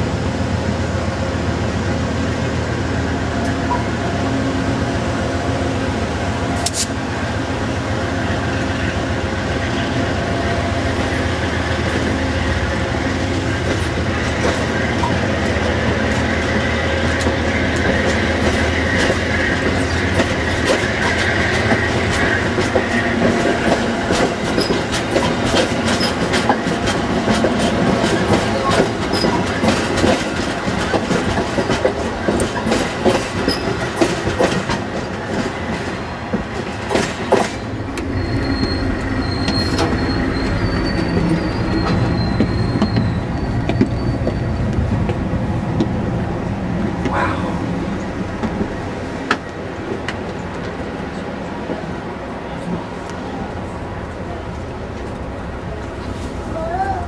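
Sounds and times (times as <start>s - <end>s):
train cars rolling on rails: 0.0s - 57.0s
wheels clicking over rail joints: 17.1s - 38.1s
high wheel squeal: 37.6s - 44.7s.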